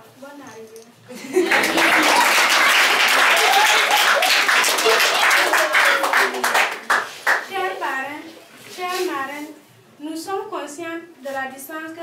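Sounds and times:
people clapping: 1.3s - 7.7s.

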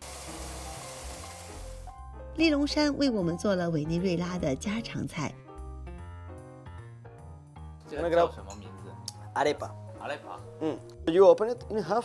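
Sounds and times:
food sizzling on hot surface: 0.0s - 2.0s.

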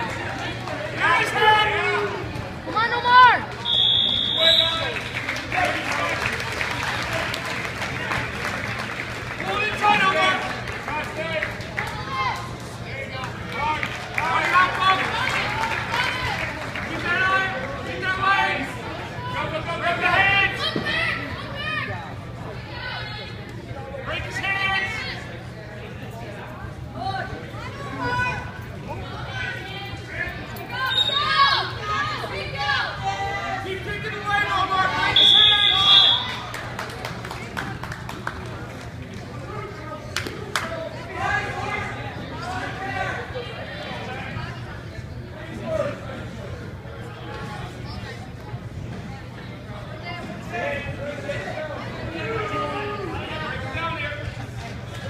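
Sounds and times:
referee's whistle: 3.6s - 4.9s, 30.8s - 31.4s, 35.1s - 36.4s
spectators and coaches shouting: 29.1s - 36.5s.

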